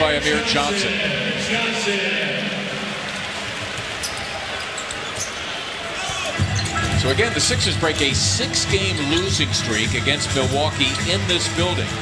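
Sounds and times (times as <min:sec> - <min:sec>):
arena crowd murmur: 0:00.0 - 0:12.0
low background music: 0:06.4 - 0:12.0.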